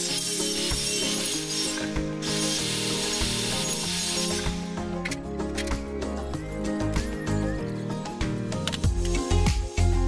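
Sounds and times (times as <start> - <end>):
chop saw grinding metal: 0.0 - 4.8
electronic background music: 0.0 - 10.0.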